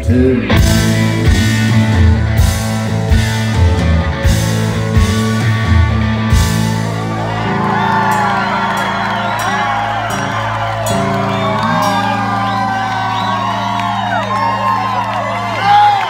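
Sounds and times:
rock band playing chords: 0:00.0 - 0:16.0
audience whooping and shouting: 0:04.9 - 0:16.0.

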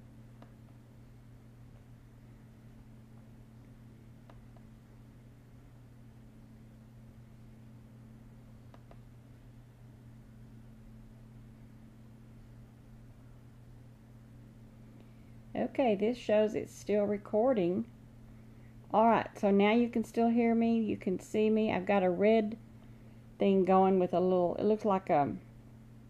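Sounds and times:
steady low hum: 0:00.0 - 0:26.0
faint clicks: 0:08.7 - 0:09.1.

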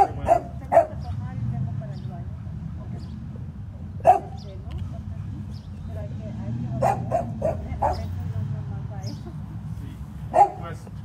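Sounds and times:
dog barking: 0:00.0 - 0:01.2, 0:04.0 - 0:04.4, 0:06.7 - 0:08.2, 0:10.3 - 0:10.8.

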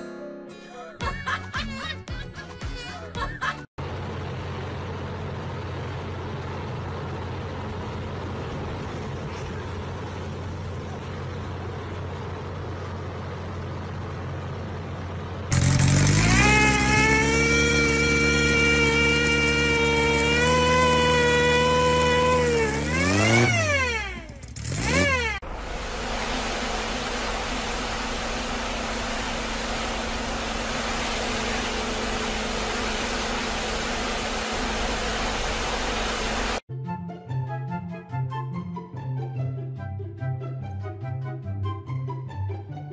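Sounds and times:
engine revving: 0:15.0 - 0:36.6
pressure washer spraying water: 0:15.5 - 0:23.6, 0:24.9 - 0:36.6
low machine hum: 0:25.4 - 0:36.6.

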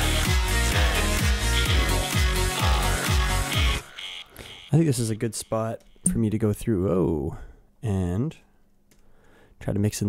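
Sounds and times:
electronic dance track: 0:00.0 - 0:04.8.

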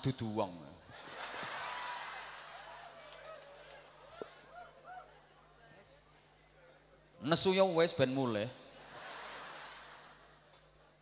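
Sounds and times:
audience laughter: 0:08.8 - 0:10.6.

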